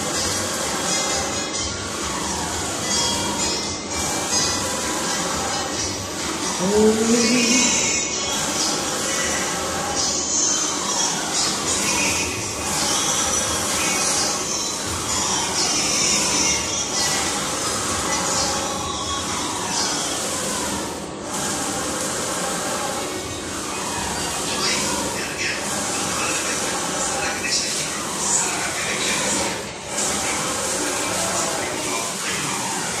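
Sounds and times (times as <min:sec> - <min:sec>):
printer carriage sliding whine: 0:00.0 - 0:33.0
printer carriage whirring: 0:00.0 - 0:33.0.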